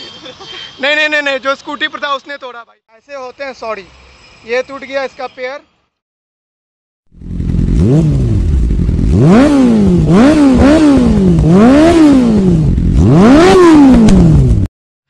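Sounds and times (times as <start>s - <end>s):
motorcycle engine revving: 7.1s - 14.7s.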